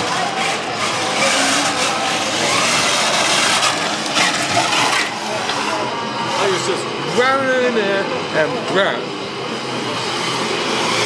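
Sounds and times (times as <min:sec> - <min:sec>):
electric motors whirring: 0:00.0 - 0:07.7, 0:08.3 - 0:11.0
wheels grinding on concrete: 0:00.0 - 0:08.5, 0:09.6 - 0:11.0
crowd chatter: 0:00.0 - 0:11.0.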